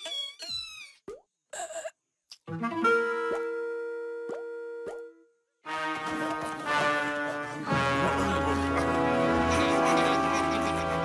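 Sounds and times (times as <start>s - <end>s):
cartoon music: 2.5s - 11.0s.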